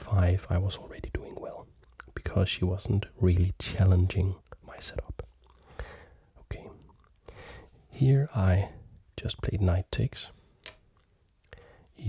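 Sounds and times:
whispered breath sounds: 5.6 - 7.8, 11.5 - 12.0.

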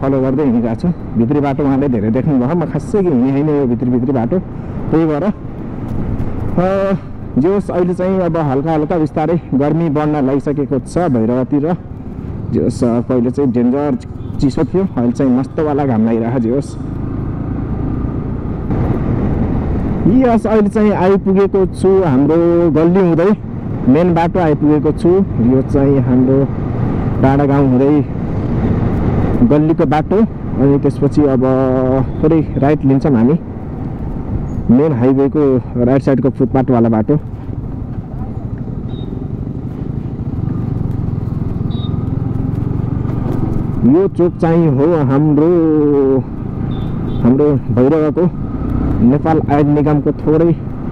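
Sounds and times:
road and wind noise: 0.0 - 50.9
motorcycle engine running: 9.8 - 20.0, 37.2 - 50.9.

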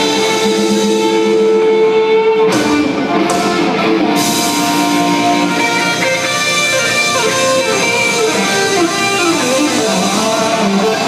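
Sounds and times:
loud live rock band: 0.0 - 11.0.

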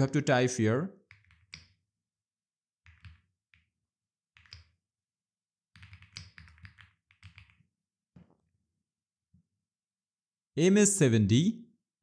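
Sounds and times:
keyboard typing: 1.0 - 1.8, 2.8 - 3.7, 4.4 - 4.8, 5.7 - 7.7.

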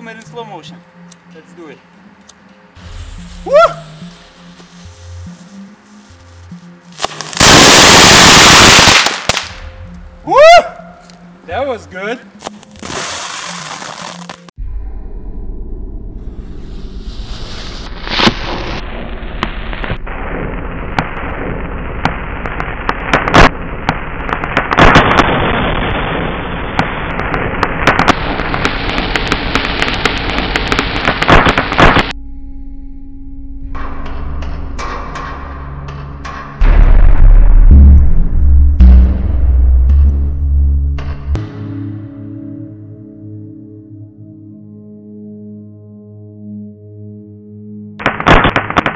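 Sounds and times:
steady music tones: 0.0 - 16.2
firecracker crackling and popping: 2.8 - 9.8, 12.4 - 14.5, 17.1 - 32.2, 48.0 - 48.9
loud deep boom: 36.6 - 41.4.

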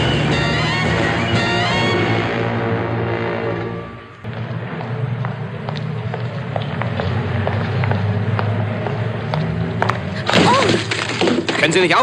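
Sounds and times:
low traffic hum: 0.0 - 12.0
footsteps clicking on pavement: 3.6 - 10.2.

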